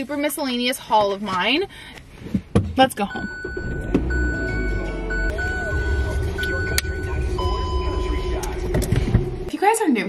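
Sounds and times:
car cabin rumble: 2.6 - 9.5
steady high tones: 3.2 - 9.5.

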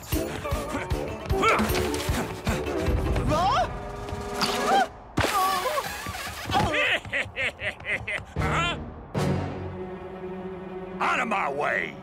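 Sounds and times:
background music: 0.0 - 5.1, 7.6 - 12.0.

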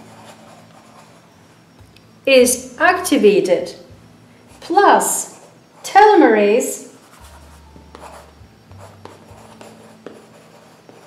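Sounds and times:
chalk scratching on chalkboard: 7.0 - 11.0.

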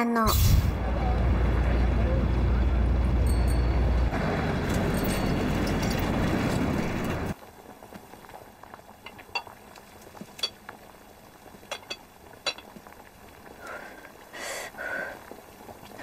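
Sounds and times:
street noise: 0.3 - 7.4
car engine rumble: 0.6 - 7.4
crockery clinking: 9.1 - 9.6, 10.4 - 10.6, 11.7 - 12.7.

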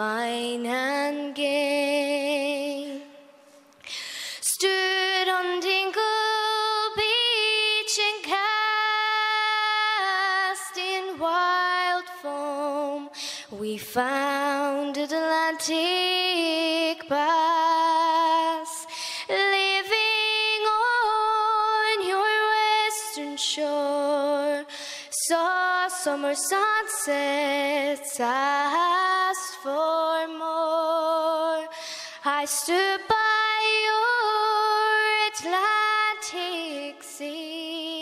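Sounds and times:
singer breathing: 3.4 - 4.5, 13.1 - 13.6, 18.8 - 19.3, 24.7 - 25.2, 31.7 - 32.3
woman singing unaccompanied: 4.5 - 38.0.

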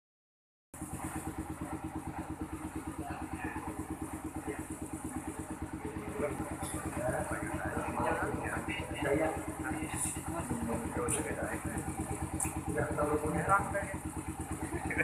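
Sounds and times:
small engine idling: 0.8 - 15.0.

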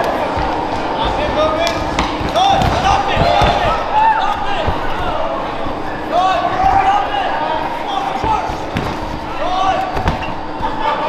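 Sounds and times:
crowd shouting: 0.0 - 11.0
bodies thudding against cage: 0.3 - 5.2, 8.0 - 10.7.

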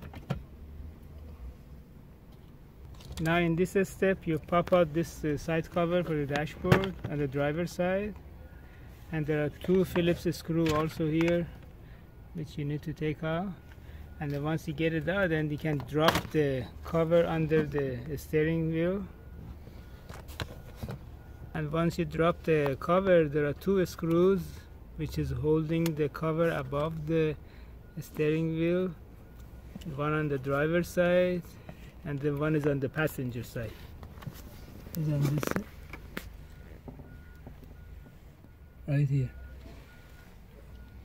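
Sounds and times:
faint electronic warning beep: 9.7 - 15.5, 16.5 - 31.9, 32.8 - 41.0.

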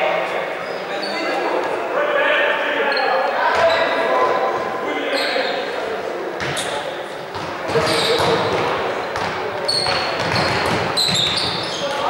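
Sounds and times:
echoing voices: 0.0 - 12.0
basketball bouncing on wooden floor: 7.3 - 11.7
short high squeaks: 7.8 - 8.2, 11.0 - 12.0.

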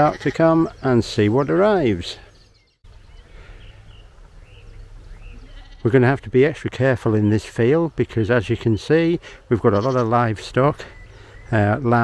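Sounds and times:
distant sheep bleating: 0.0 - 0.8, 5.3 - 6.3, 9.5 - 10.4.

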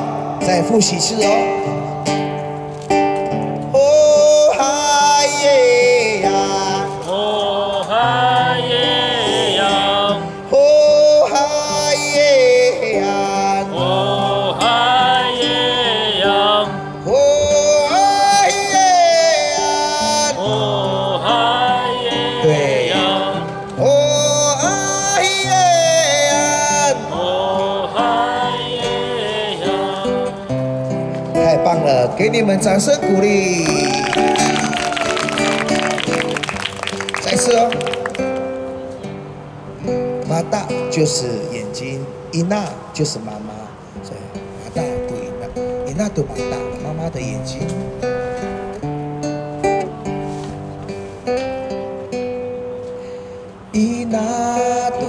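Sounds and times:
nylon-string guitar chords: 0.0 - 55.0
man singing: 3.7 - 30.7, 53.7 - 55.0.

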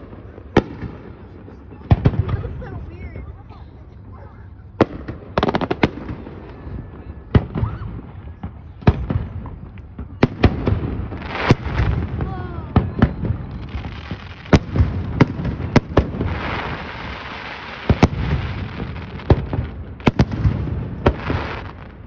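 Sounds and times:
firework crackling: 0.0 - 22.0
firework hiss: 10.5 - 22.0.

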